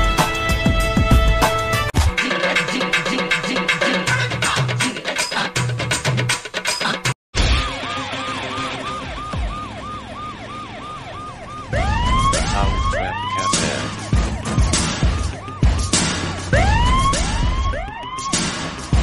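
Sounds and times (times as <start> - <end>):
siren-like yelping wail: 7.6 - 19.0.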